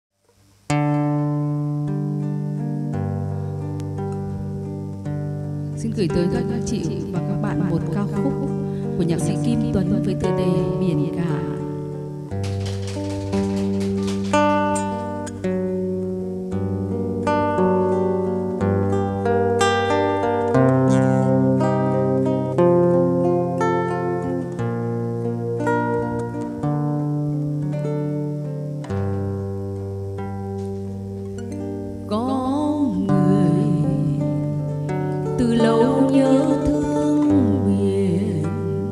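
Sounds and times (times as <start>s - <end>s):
acoustic guitar picking: 0.5s - 38.9s
woman singing: 5.8s - 11.7s, 32.1s - 38.9s.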